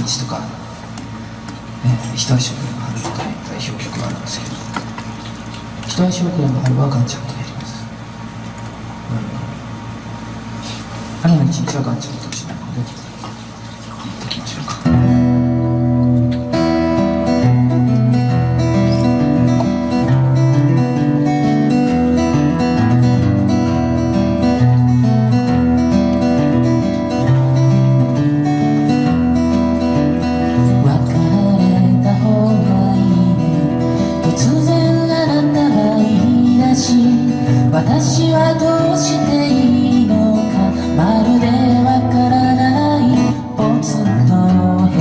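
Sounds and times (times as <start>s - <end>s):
acoustic guitar strumming: 13.7s - 45.0s
person singing: 30.6s - 45.0s.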